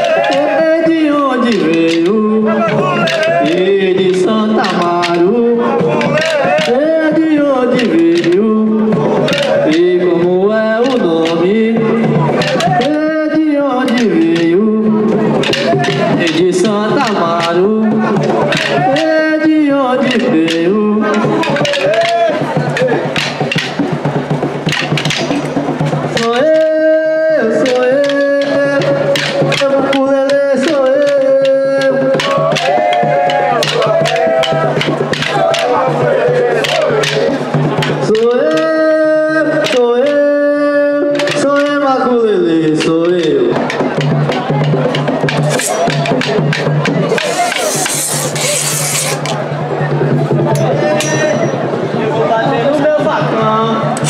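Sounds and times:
wooden sticks clacking: 0.0s - 11.5s, 12.1s - 13.0s, 13.8s - 14.6s, 15.3s - 26.9s, 27.6s - 38.8s, 39.6s - 40.2s, 41.1s - 41.8s, 42.8s - 49.4s
drum beat: 0.0s - 40.2s, 42.8s - 52.0s
crowd voices: 0.0s - 54.0s.

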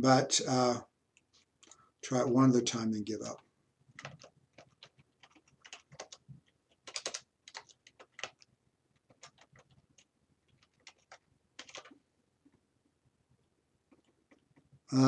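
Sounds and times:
typing on computer keyboard: 3.9s - 12.0s, 13.9s - 14.7s.

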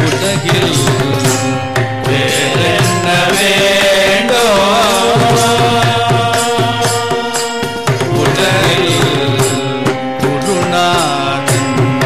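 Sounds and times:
harmonium: 0.0s - 12.0s
violin holding long notes: 0.0s - 12.0s
group singing: 2.0s - 12.0s.

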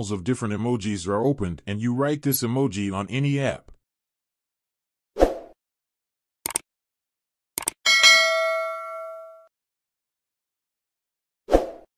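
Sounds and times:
notification bell ding: 7.9s - 9.5s.

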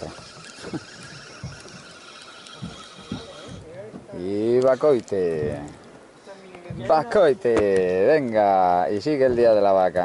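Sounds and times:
fishing reel whirring: 0.0s - 3.5s
soft knocks: 9.2s - 9.7s.

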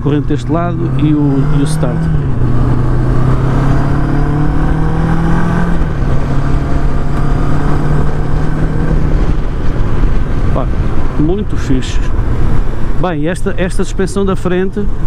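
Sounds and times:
motorcycle engine cruising: 0.0s - 15.0s
wind and road noise: 0.0s - 15.0s.

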